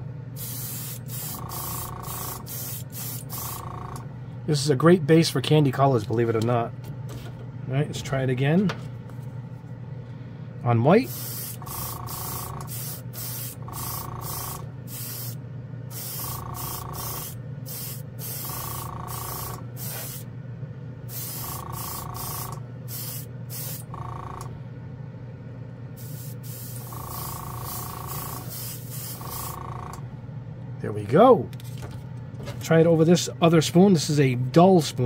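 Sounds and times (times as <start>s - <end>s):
steady low hum: 0.0s - 35.0s
airbrush hissing air bursts: 0.4s - 3.8s, 11.0s - 20.3s, 21.1s - 23.9s, 26.0s - 29.7s.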